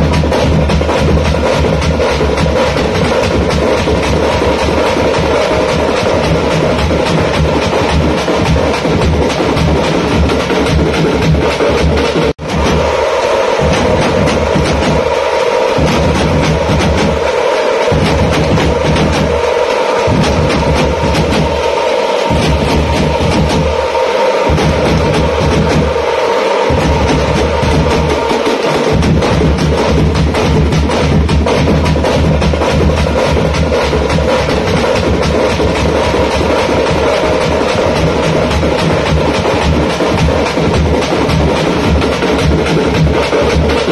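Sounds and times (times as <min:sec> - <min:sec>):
frame drums beating fast: 0:00.0 - 0:43.9
deep bass drum: 0:13.6 - 0:15.1, 0:15.8 - 0:17.2, 0:17.9 - 0:19.3, 0:20.1 - 0:21.6, 0:22.3 - 0:23.8, 0:24.5 - 0:26.0, 0:26.7 - 0:28.2, 0:28.9 - 0:43.9.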